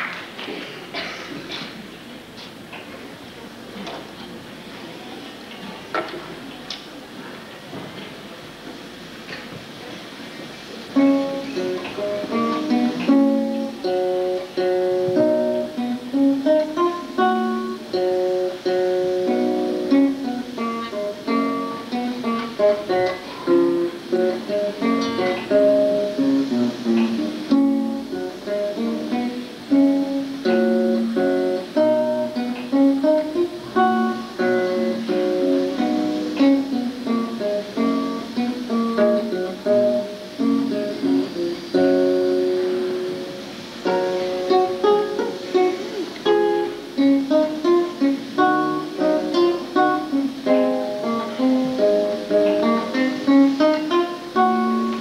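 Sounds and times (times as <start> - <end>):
fingerstyle classical guitar: 0.0 - 55.0.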